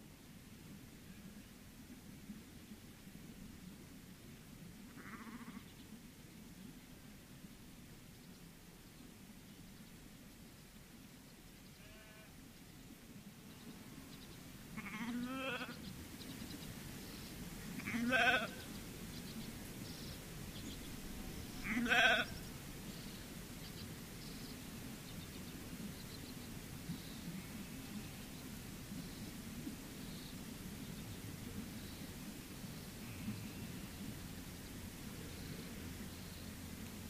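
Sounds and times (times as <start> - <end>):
sheep bleating: 5.0 - 5.6, 11.8 - 12.3, 14.8 - 15.8, 17.8 - 18.6, 21.6 - 22.3.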